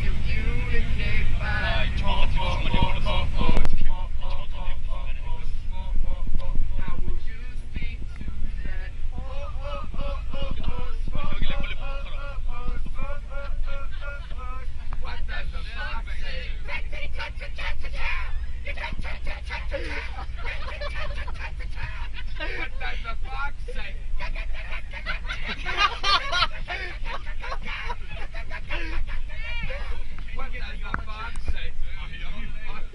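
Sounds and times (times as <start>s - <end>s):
bus rumbling: 0.0s - 32.9s
passengers shouting and chattering: 0.0s - 32.9s.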